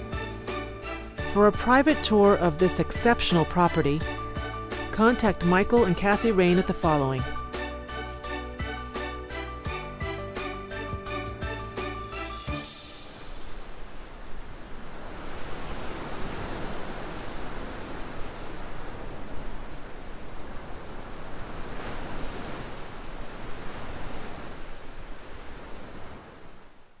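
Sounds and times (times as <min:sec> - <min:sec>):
waves breaking on rocky shore: 0:12.8 - 0:26.8.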